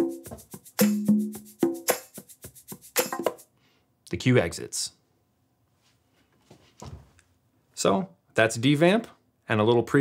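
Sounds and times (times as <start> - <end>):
percussion groove with pitched tones: 0.0 - 3.5.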